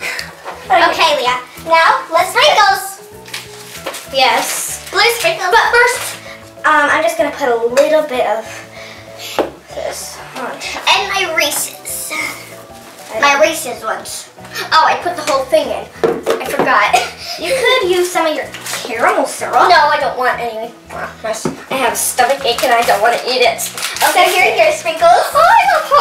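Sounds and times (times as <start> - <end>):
children's voices: 0.7 - 3.1, 4.0 - 8.7, 9.7 - 26.0.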